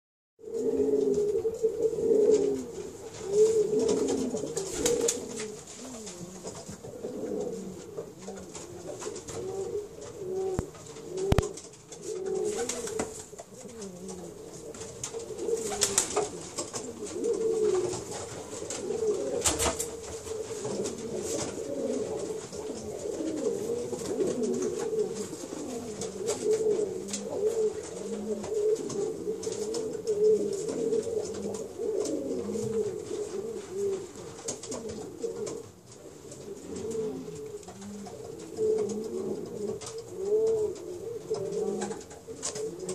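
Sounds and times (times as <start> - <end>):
pigeon cooing: 0.4 - 42.9.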